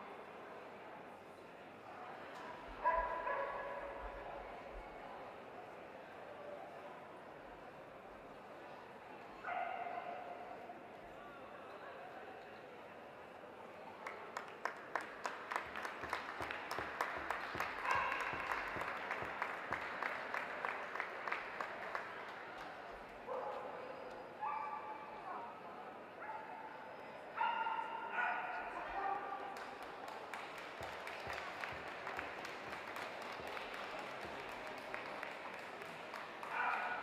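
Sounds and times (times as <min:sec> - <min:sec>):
audience clapping: 0:14.0 - 0:23.1, 0:29.4 - 0:37.0.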